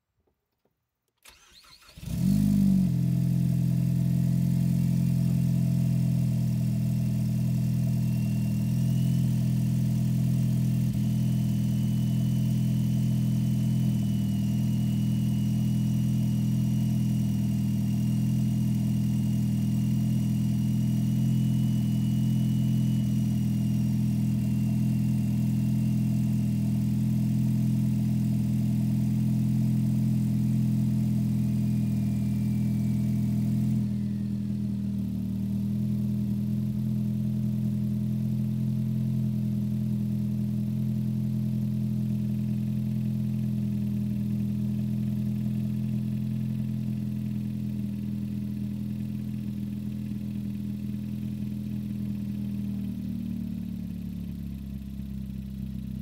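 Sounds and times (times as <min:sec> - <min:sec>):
car engine idling: 0:01.2 - 0:56.0.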